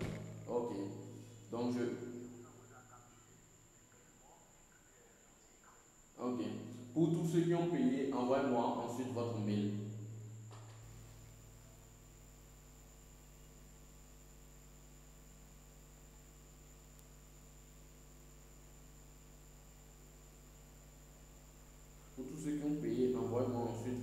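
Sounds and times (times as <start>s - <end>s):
faint electrical hum and hiss: 0.0s - 24.0s.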